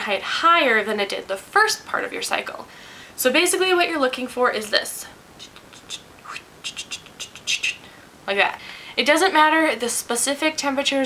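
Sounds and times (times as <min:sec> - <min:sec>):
mouth clicks and chirps: 0:05.4 - 0:07.8.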